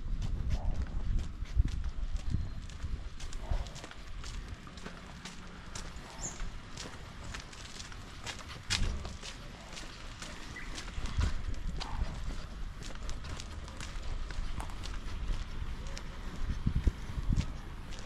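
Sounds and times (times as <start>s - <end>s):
low rumble: 0.0s - 18.0s
footsteps on concrete: 0.1s - 18.0s.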